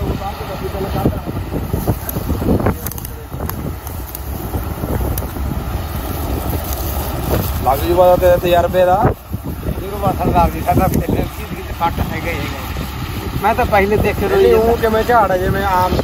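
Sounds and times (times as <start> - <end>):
combine harvester rumble: 0.0 - 16.0
wind buffeting microphone: 0.0 - 16.0.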